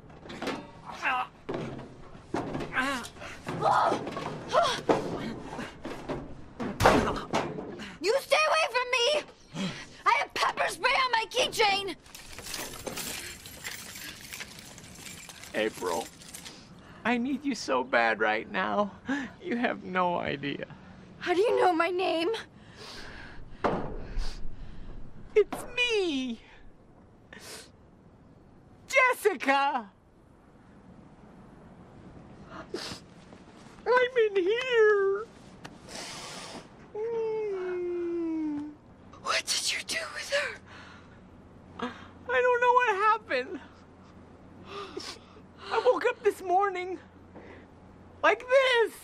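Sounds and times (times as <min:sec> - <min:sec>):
keys jangling and clinking: 0:12.0 - 0:16.7.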